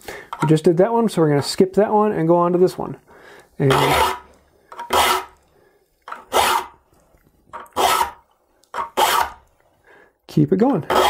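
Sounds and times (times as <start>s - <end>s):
file stroking saw teeth: 3.6s - 5.4s, 6.1s - 6.8s, 7.6s - 8.2s, 8.8s - 9.5s, 10.8s - 11.0s.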